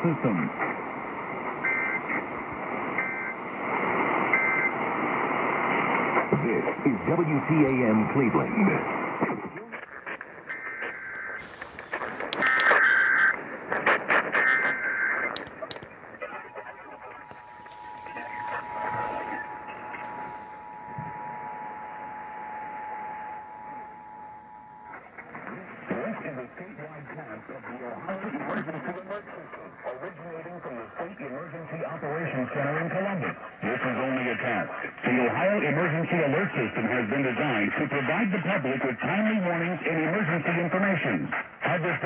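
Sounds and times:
announcer speaking on radio: 6.3 - 8.9, 15.4 - 21.3
harsh buzzing data bursts: 10.3 - 25.4
two-tone attention signal: 16.6 - 25.2.

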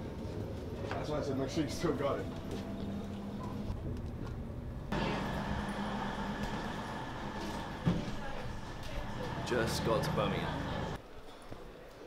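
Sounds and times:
train carriage rumble: 0.0 - 11.0.

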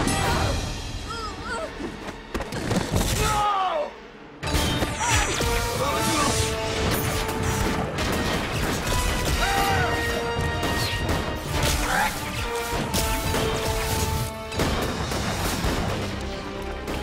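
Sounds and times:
dramatic musical score: 0.0 - 17.0.

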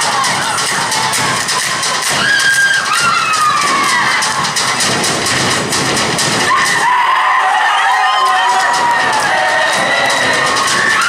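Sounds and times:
crowd cheering: 0.0 - 5.0, 6.4 - 11.0
rapid sharp rhythmic claps: 0.0 - 11.0
high falling whoops and shouts: 6.5 - 11.0.

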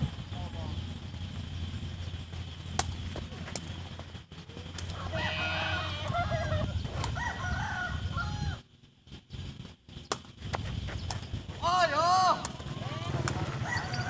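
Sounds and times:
ball being kicked: 2.3 - 5.0
rooster crowing: 4.9 - 8.6, 12.6 - 14.0.

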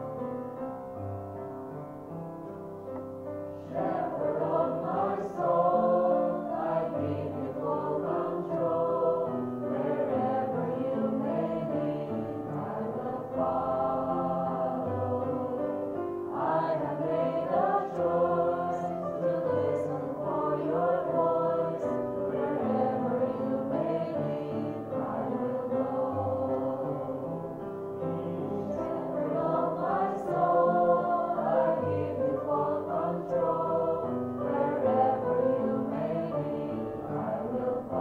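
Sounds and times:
women singing gospel song: 3.7 - 38.0.

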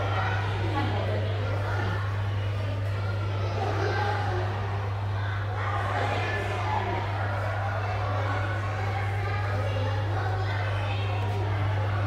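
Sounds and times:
faint background voices: 0.0 - 12.0
steady low hum: 0.0 - 12.0.

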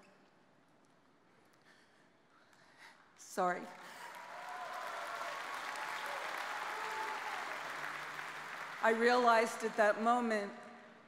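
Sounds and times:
audience applause: 4.0 - 9.8.

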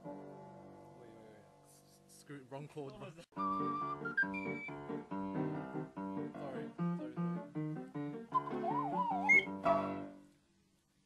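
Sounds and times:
piano chords: 0.0 - 1.6, 3.4 - 10.3
ocarina melody: 3.4 - 4.8, 8.3 - 9.9.

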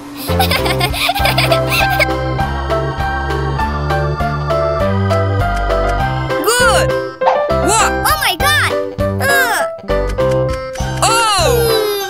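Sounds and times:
baby-like giggle: 0.2 - 2.1
cheerful music with steady beat: 0.3 - 12.0.

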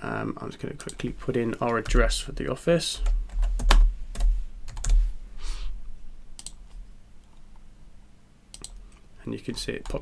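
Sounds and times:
keyboard typing clicks: 6.4 - 6.8, 8.5 - 8.8.

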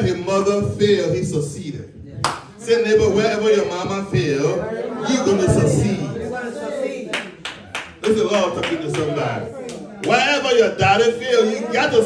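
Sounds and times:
hands clapping: 2.2 - 2.6, 7.1 - 10.4.

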